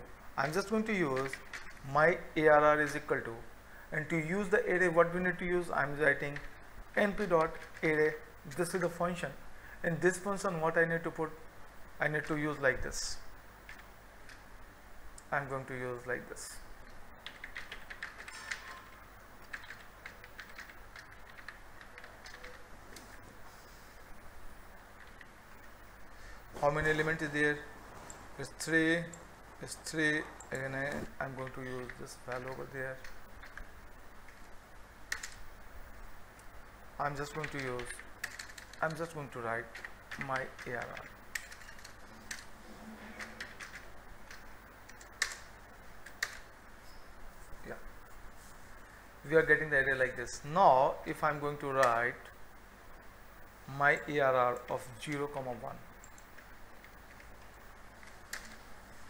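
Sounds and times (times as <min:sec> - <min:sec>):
keyboard typing: 0:00.4 - 0:01.8, 0:06.2 - 0:08.0, 0:17.2 - 0:23.2, 0:35.1 - 0:35.4, 0:37.2 - 0:46.5, 0:54.6 - 0:58.7.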